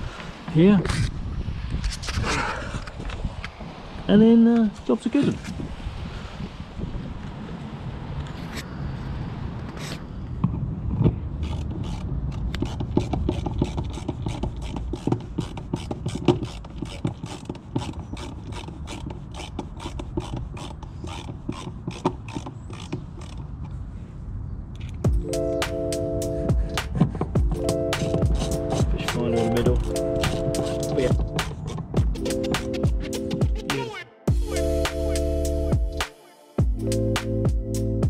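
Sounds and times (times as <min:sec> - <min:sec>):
low handling noise: 0:24.9 - 0:33.7.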